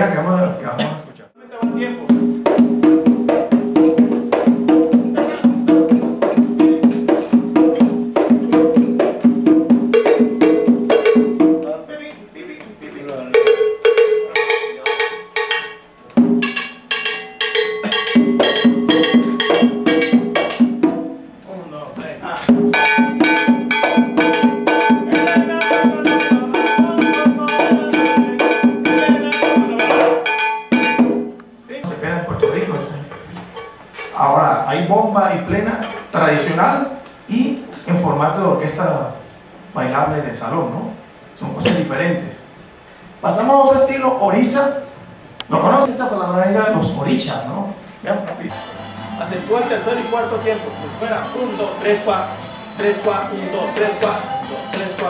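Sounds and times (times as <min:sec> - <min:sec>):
hand frame drums fast beat: 0:01.6 - 0:11.9, 0:13.1 - 0:21.4, 0:22.5 - 0:32.9, 0:49.5 - 0:55.0
sustained melodic part: 0:22.8 - 0:31.4, 0:48.5 - 0:55.0.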